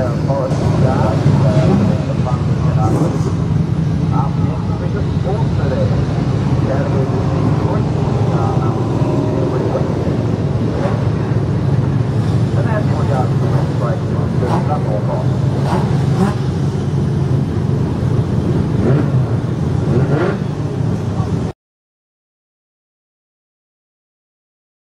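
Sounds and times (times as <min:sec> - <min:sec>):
faint voices: 0:00.0 - 0:03.4, 0:04.1 - 0:16.0
car engines rumbling: 0:00.0 - 0:21.6.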